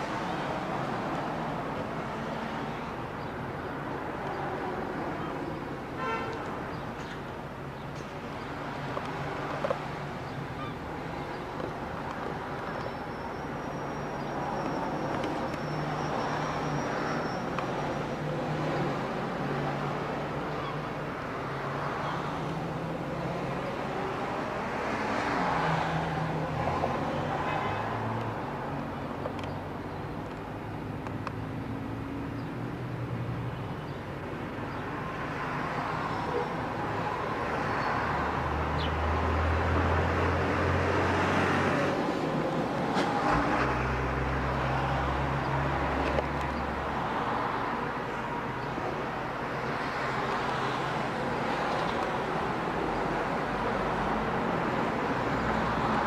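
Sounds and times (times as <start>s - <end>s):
road noise: 0.0s - 56.0s.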